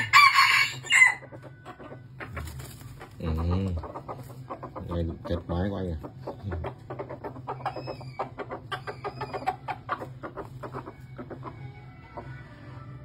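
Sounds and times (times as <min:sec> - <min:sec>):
junglefowl clucking: 0:00.0 - 0:12.4
steady low hum: 0:00.0 - 0:13.0.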